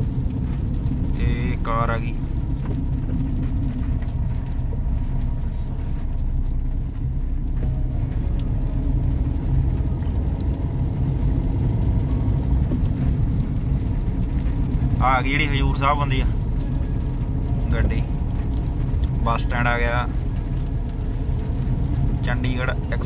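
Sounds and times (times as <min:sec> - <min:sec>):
car engine and tyres on wet road: 0:00.0 - 0:23.0.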